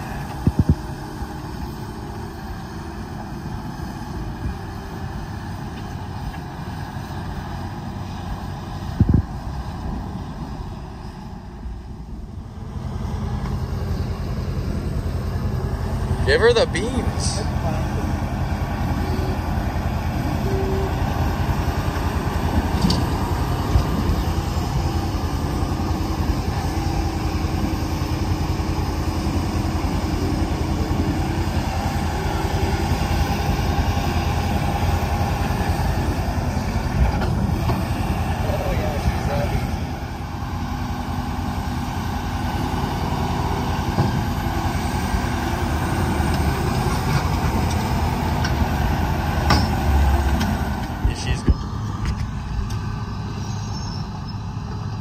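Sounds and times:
diesel engine under heavy load: 0:00.0 - 0:55.0.

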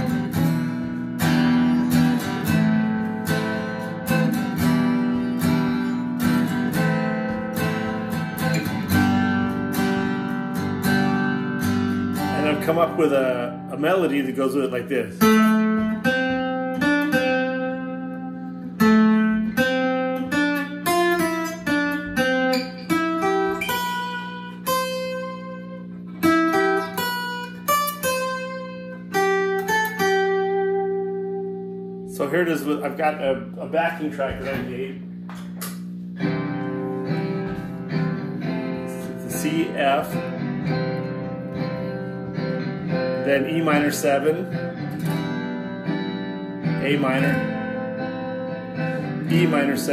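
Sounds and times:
acoustic guitar melody: 0:00.0 - 0:49.9.

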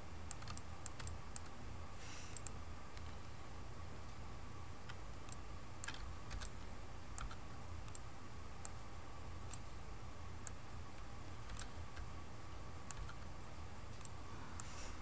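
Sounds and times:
low steady hum: 0:00.0 - 0:15.0
computer mouse clicks: 0:00.2 - 0:01.6, 0:02.3 - 0:03.2, 0:04.8 - 0:08.8, 0:09.5 - 0:09.7, 0:10.4 - 0:12.1, 0:12.9 - 0:13.3, 0:14.0 - 0:14.8
keyboard clicks: 0:00.3 - 0:01.6, 0:04.8 - 0:08.8, 0:11.4 - 0:12.1, 0:12.9 - 0:13.3.

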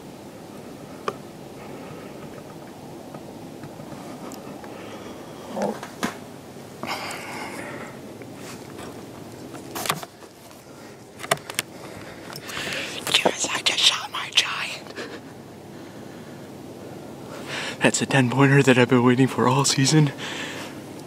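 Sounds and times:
man whispering: 0:12.8 - 0:15.0.

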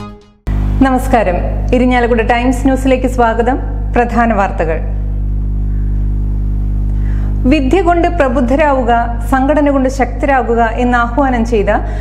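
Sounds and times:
sustained low music tones: 0:00.0 - 0:09.5.

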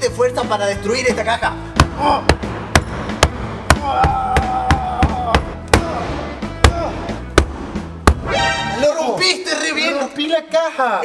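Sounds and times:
sledgehammer striking a wall: 0:01.8 - 0:08.3.

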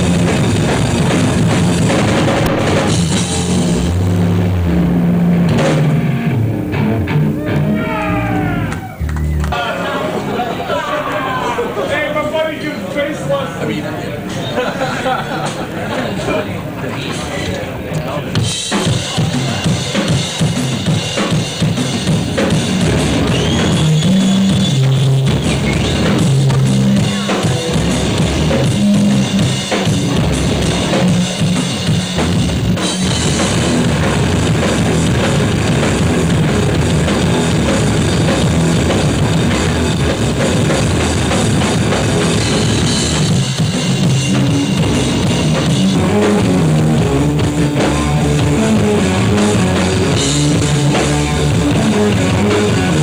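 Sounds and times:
rock band with distorted guitars: 0:00.0 - 0:12.0, 0:13.6 - 0:53.0.

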